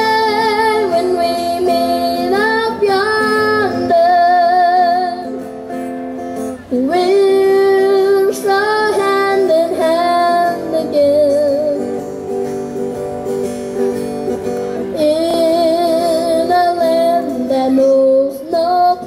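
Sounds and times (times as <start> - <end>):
boy singing with vibrato: 0.0 - 5.5, 6.5 - 12.2, 14.8 - 19.0
strummed acoustic guitar: 0.0 - 19.0.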